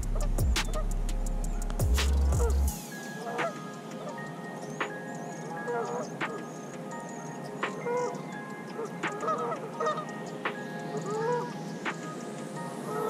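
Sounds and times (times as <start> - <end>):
background music with held tones: 0.0 - 13.0.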